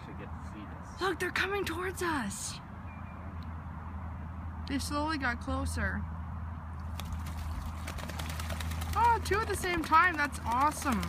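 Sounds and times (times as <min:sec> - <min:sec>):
ducks splashing water: 0:06.8 - 0:11.0.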